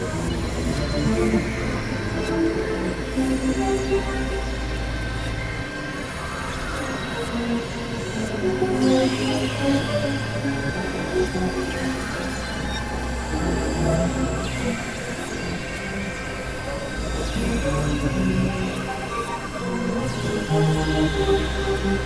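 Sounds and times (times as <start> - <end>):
synthesizer drones and tones: 0.0 - 22.0.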